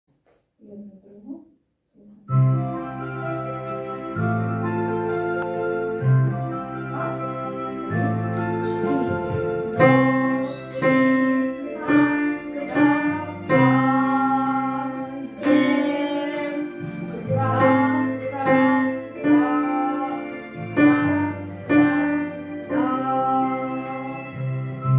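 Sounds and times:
digital piano notes: 0:02.3 - 0:24.9
woman singing: 0:06.8 - 0:24.4.

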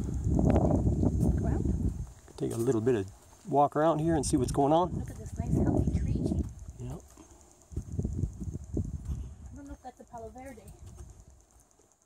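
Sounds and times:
wind or handling rumble: 0:00.0 - 0:11.6
footsteps: 0:00.0 - 0:11.8.

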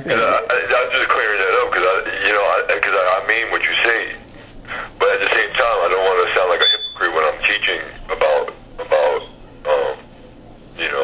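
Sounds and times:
person talking: 0:00.0 - 0:04.3.

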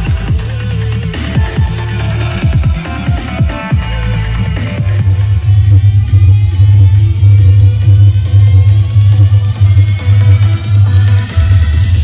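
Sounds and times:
loud electronic music: 0:00.0 - 0:12.0.

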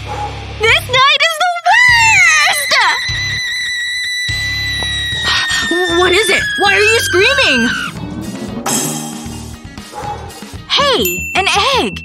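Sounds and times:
background music: 0:00.0 - 0:12.0
woman screaming and wailing: 0:01.6 - 0:08.0.

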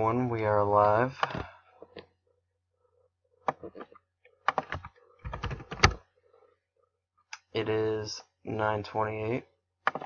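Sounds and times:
typing on a keyboard: 0:04.5 - 0:06.0.

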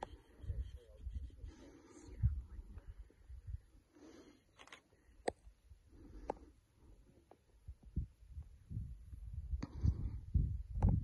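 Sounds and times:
low thumps on microphone: 0:07.8 - 0:11.0.

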